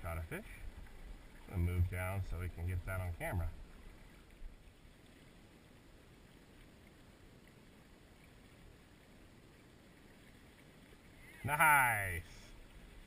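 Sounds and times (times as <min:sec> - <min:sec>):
river water flowing: 0:00.0 - 0:13.0.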